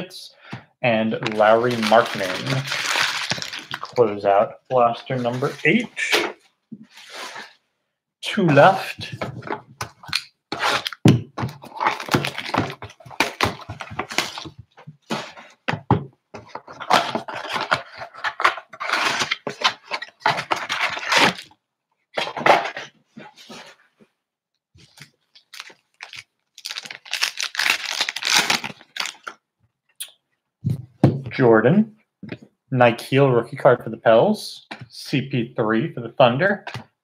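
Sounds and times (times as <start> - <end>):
packs crinkling and ripping: 1.2 - 4.2, 8.7 - 15.4, 16.7 - 21.5, 24.8 - 29.4.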